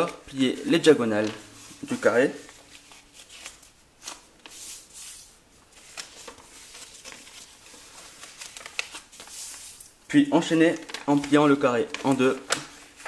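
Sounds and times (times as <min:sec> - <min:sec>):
paper crackle: 0:00.0 - 0:13.0
paper rustling: 0:00.0 - 0:13.0.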